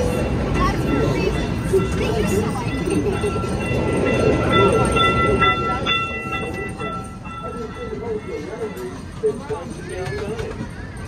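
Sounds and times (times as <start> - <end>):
steady high-pitched tone: 0.0 - 9.9
small train rumbling: 0.0 - 11.0.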